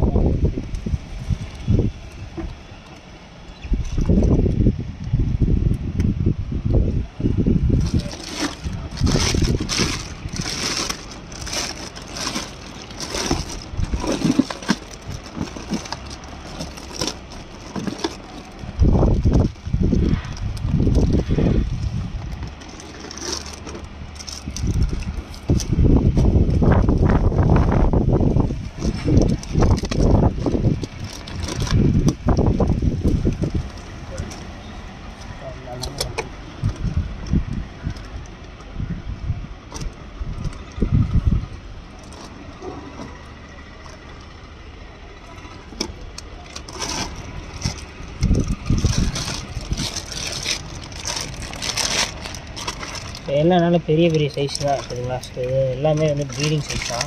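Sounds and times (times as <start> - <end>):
microphone handling noise: 3.6 - 34.3
plastic bag crinkling: 7.7 - 25.8, 28.6 - 34.6, 45.4 - 57.0
water sloshing: 7.8 - 18.8.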